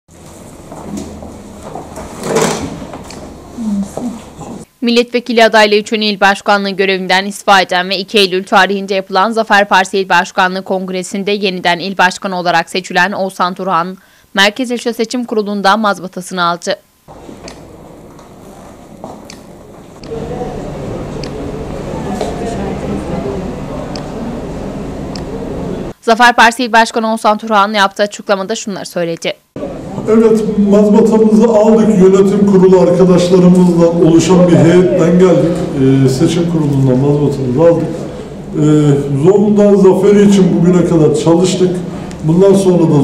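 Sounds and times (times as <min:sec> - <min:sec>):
voice murmuring: 0:03.4 - 0:04.7.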